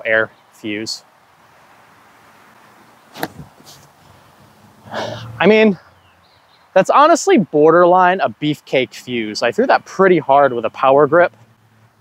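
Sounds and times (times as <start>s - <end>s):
sharp knock of disc throw: 3.1s - 3.8s.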